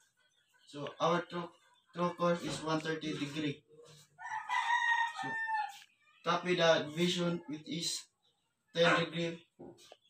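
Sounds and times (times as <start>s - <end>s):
rooster crowing: 4.2s - 5.9s.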